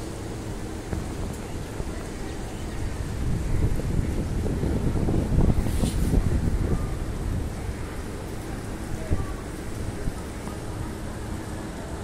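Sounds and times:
rain falling on rooftops: 0.0 - 12.0.

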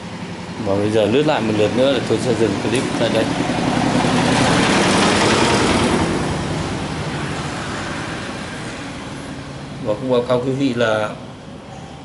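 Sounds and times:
vehicle passing by: 0.0 - 12.0.

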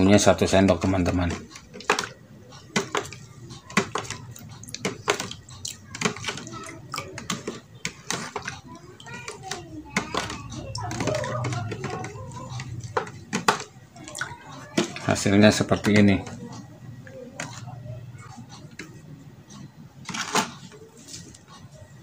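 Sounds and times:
spoon scraping plastic tub: 1.0 - 16.1.

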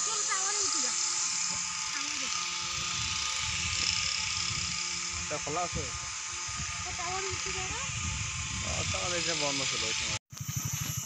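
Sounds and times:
insects buzzing: 0.0 - 11.0
wind on microphone: 2.6 - 11.0.

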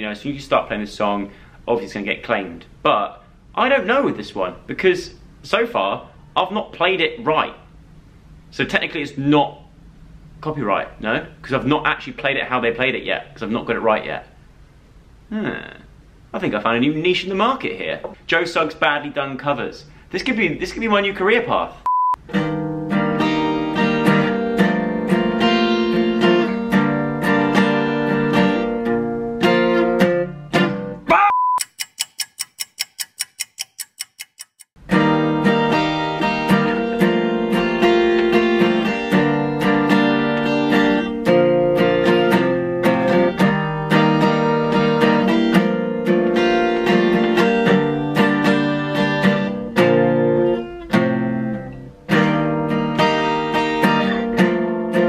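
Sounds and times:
acoustic guitar strumming: 22.2 - 31.1, 34.8 - 55.0
evenly spaced ticks: 31.6 - 34.8.

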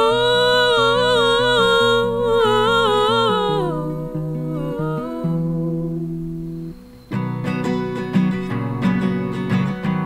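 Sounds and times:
woman's wordless vocal melody: 0.0 - 7.0
plucked acoustic guitar: 0.0 - 10.0.

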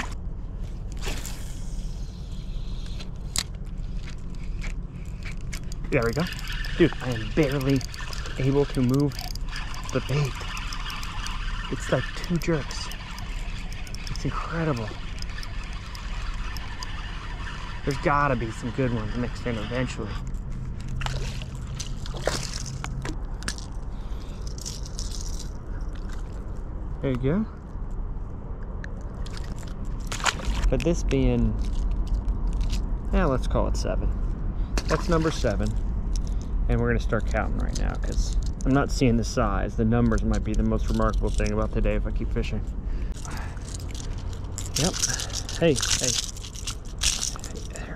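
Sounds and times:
steady low hum: 0.0 - 47.9
fishing line paying out: 1.0 - 26.4
reel handling ticks: 2.2 - 26.4, 43.1 - 47.9
sharp reel click: 5.2 - 20.3
fish splashing in water: 21.0 - 23.2.

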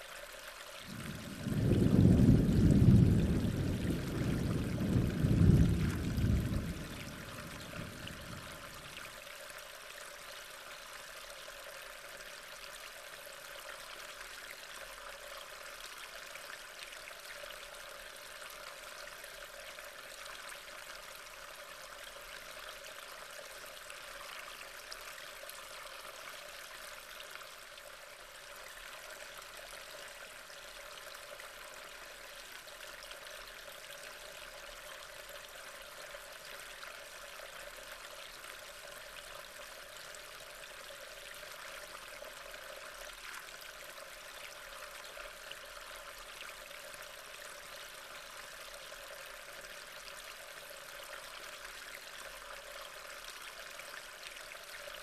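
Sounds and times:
water rushing: 0.8 - 9.2.

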